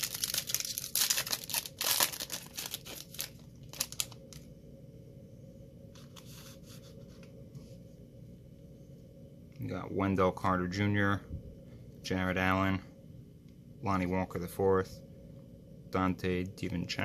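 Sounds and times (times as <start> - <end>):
foil wrapper crinkling: 0.0 - 4.4.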